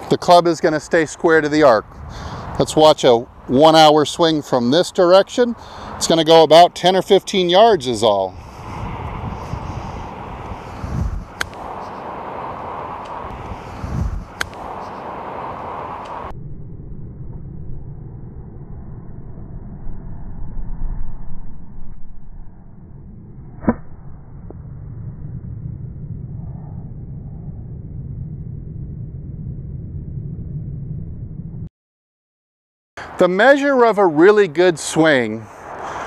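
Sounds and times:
wind noise: 0:00.0 - 0:31.7
golf club striking ball: 0:11.4 - 0:12.0, 0:14.4 - 0:15.0
slowed deep club strike: 0:23.2 - 0:25.3.

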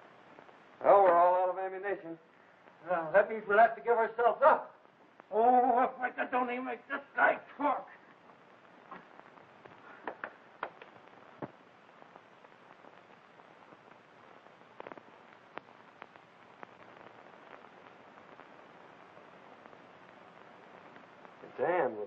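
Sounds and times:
film soundtrack clicks and pops: 0:00.0 - 0:01.5, 0:02.3 - 0:02.8, 0:04.7 - 0:05.4, 0:07.9 - 0:21.6
faint steady hiss: 0:00.0 - 0:22.0.

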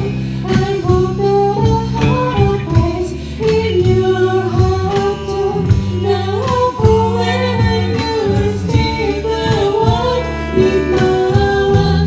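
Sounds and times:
bass guitar: 0:00.0 - 0:12.0
drum kit beat: 0:00.0 - 0:12.0
electric guitar: 0:00.0 - 0:12.0
woman singing: 0:00.0 - 0:12.0.

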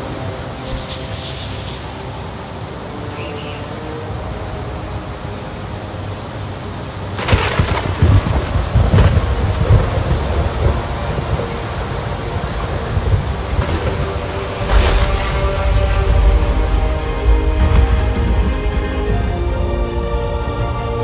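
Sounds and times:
steady rain hiss: 0:00.0 - 0:21.0
thunderclap with low rumble: 0:07.1 - 0:20.0.

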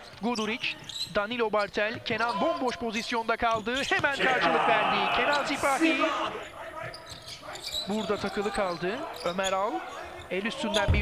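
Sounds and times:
commentary voice: 0:04.2 - 0:06.7.

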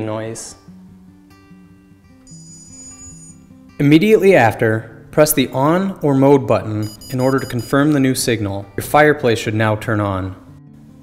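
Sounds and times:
soft acoustic guitar music: 0:00.0 - 0:11.0
high electronic beep: 0:02.3 - 0:03.4, 0:06.8 - 0:07.8.

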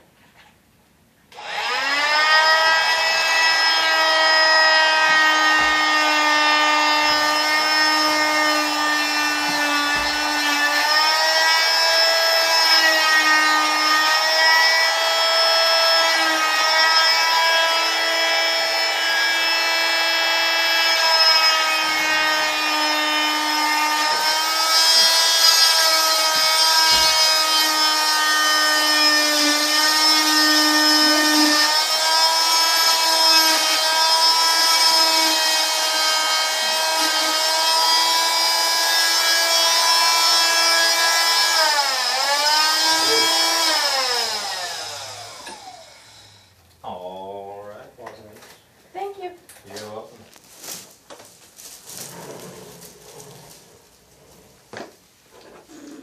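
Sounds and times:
cast saw whining: 0:01.3 - 0:47.0.

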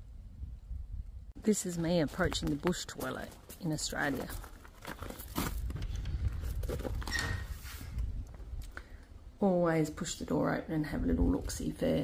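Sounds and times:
wind rumble on microphone: 0:00.0 - 0:02.8, 0:05.3 - 0:09.4, 0:10.8 - 0:12.0
footsteps on gravel: 0:01.7 - 0:07.0.

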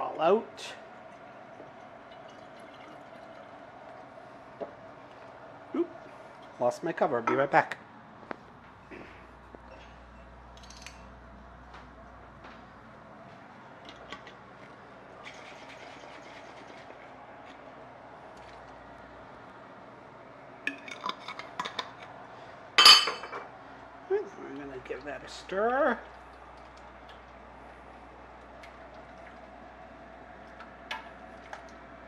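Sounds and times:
metal utensils clinking: 0:22.8 - 0:23.4.

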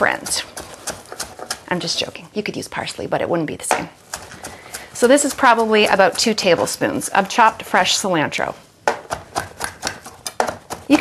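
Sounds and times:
knife chopping on cutting board: 0:00.0 - 0:01.6, 0:08.9 - 0:11.0.

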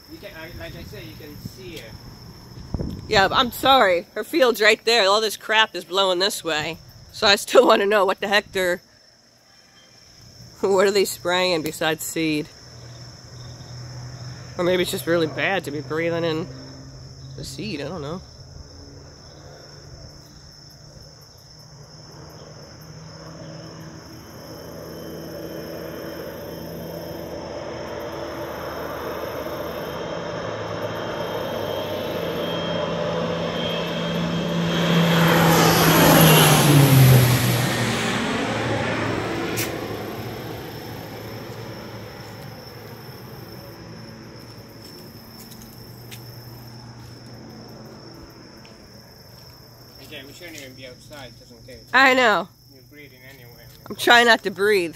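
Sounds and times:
insects shrilling: 0:00.0 - 0:37.0
airplane passing overhead: 0:00.0 - 0:54.9.

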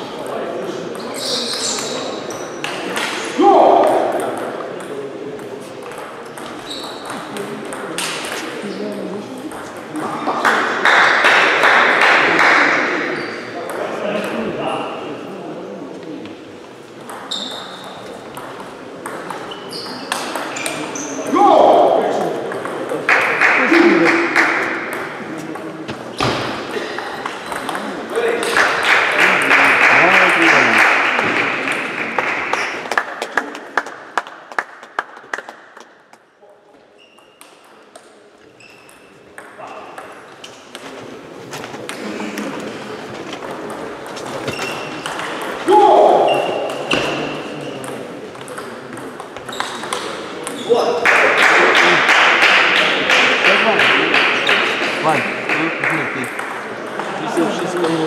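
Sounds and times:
voices in a hall: 0:00.0 - 0:58.0
players shouting: 0:45.6 - 0:46.7.

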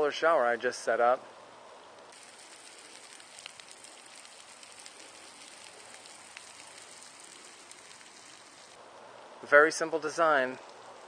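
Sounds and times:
shower spray hissing: 0:02.1 - 0:08.8
water drops ticking: 0:02.2 - 0:08.7.

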